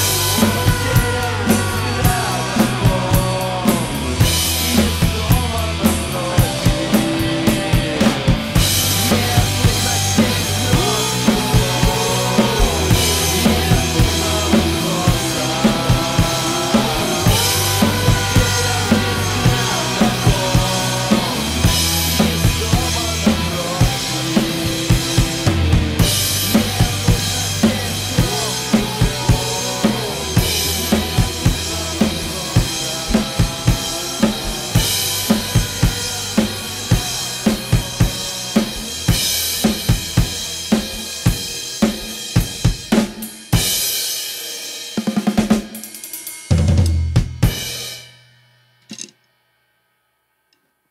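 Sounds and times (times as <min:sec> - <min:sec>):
guitar and bass rock song: 0:00.0 - 0:43.8
rock drum kit playing: 0:00.0 - 0:48.2.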